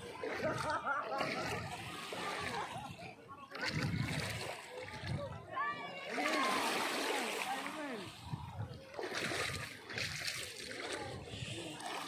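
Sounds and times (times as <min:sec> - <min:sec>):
people's voices: 0:00.0 - 0:12.0
water washing over pebbles: 0:06.0 - 0:12.0.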